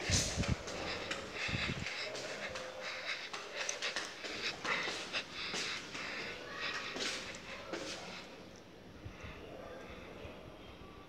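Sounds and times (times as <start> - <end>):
breathy puffs and rustles: 0.0 - 8.4.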